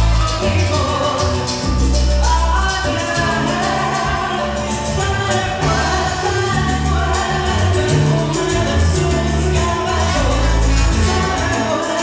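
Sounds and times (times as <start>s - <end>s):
drum kit and percussion: 0.0s - 12.0s
electric bass: 0.0s - 12.0s
woman singing: 0.0s - 12.0s.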